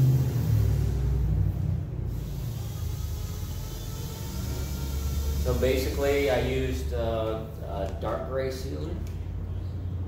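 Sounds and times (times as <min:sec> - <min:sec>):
shop machinery rumble and hum: 0:00.0 - 0:10.0.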